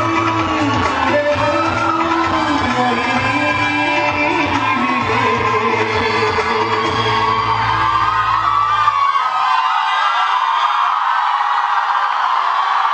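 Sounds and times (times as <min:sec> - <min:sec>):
loud dance music: 0:00.0 - 0:09.2
audience whooping and yelling: 0:00.0 - 0:12.9.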